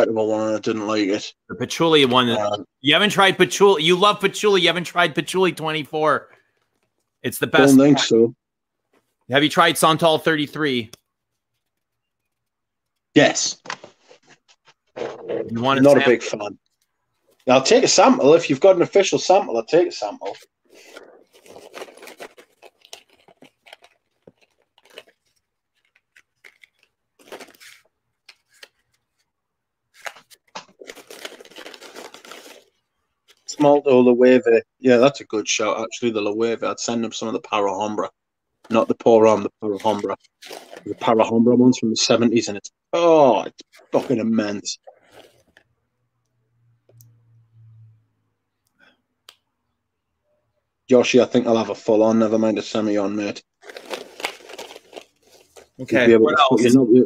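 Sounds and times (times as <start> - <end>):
man speaking: 0.0 - 6.3, 7.2 - 8.4, 9.3 - 11.0, 15.3 - 16.6, 38.7 - 40.2, 40.8 - 44.8, 55.8 - 57.0
rustling and scratching handling: 8.8 - 17.6, 20.2 - 29.3, 29.9 - 33.6, 38.6 - 41.2, 43.6 - 45.8, 53.6 - 56.2.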